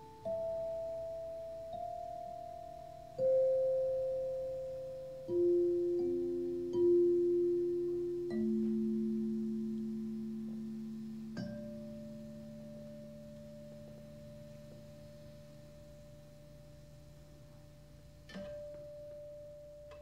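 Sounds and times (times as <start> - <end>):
tuning forks ringing: 0.0 - 20.0.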